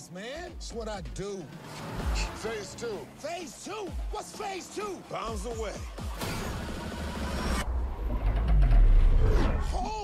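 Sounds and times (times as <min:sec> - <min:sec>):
deep rumble: 0:07.3 - 0:09.9
low falling tone: 0:07.4 - 0:10.0.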